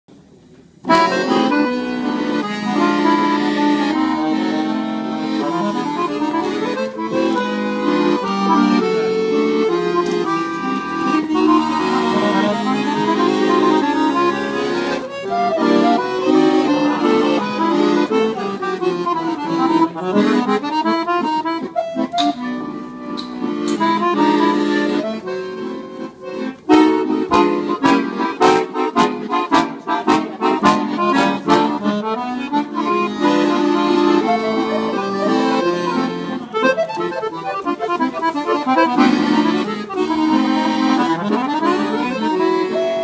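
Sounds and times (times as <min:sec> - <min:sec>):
accordion playing lively folk dance: 0:00.8 - 0:43.0.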